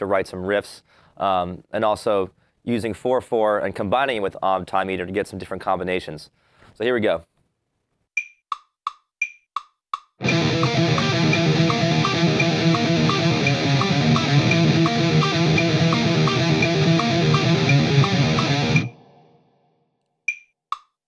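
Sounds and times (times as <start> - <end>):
steady ticking click: 8.2 - 18.9, 20.3 - 20.9
distorted electric guitar riff: 10.2 - 19.4.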